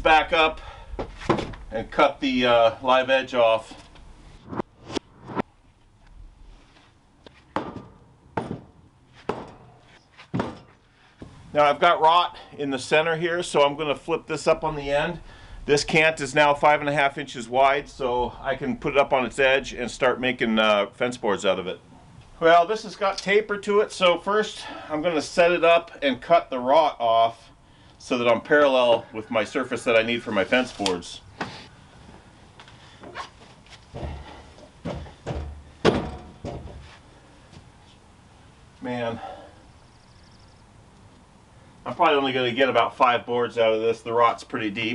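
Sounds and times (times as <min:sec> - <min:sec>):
wooden boards knocking: 0:07.5 - 0:09.6, 0:10.3 - 0:10.7, 0:34.0 - 0:36.8
heavy thump: 0:07.6 - 0:11.4, 0:34.0 - 0:36.9.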